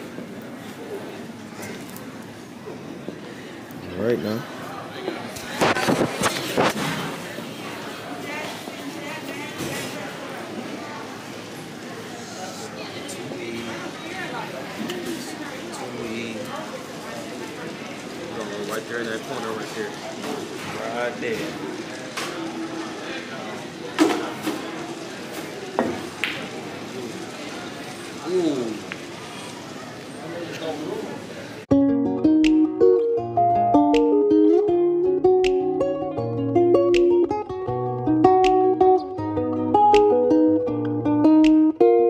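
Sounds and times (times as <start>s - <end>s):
chatter of voices: 0.0s - 31.7s.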